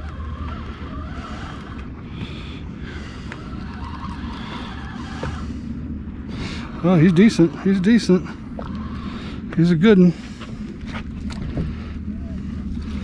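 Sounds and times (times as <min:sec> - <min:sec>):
water around boat: 0:00.0 - 0:13.0
wind: 0:00.0 - 0:13.0.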